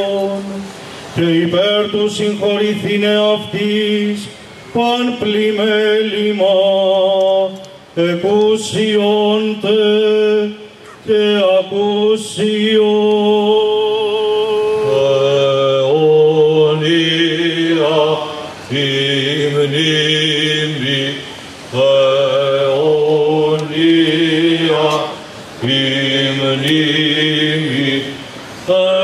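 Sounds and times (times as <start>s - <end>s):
men singing chant over drone: 0.0s - 29.0s.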